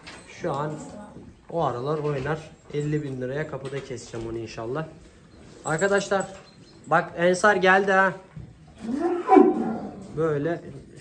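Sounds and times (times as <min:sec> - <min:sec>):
cow mooing: 0:08.8 - 0:10.0.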